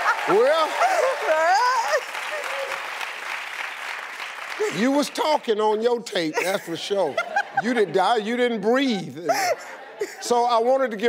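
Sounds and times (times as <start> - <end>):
studio audience applauding: 0.0 - 5.8
man's voice: 4.6 - 11.0.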